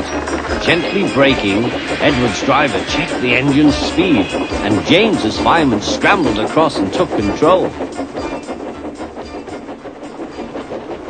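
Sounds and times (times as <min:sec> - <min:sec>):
train rattling along track: 0:00.0 - 0:11.0.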